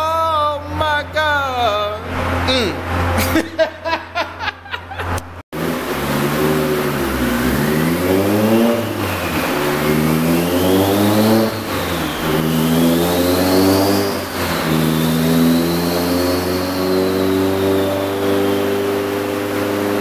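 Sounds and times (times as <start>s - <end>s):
car engine accelerating: 0.0s - 20.0s
high turbo whine: 0.0s - 20.0s.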